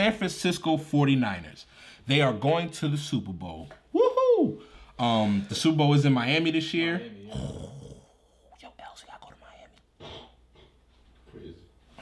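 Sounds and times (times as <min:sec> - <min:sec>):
person whispering: 0:08.2 - 0:09.8.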